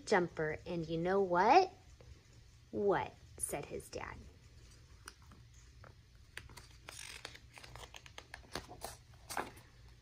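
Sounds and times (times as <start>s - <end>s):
book page turning: 5.0s - 9.8s.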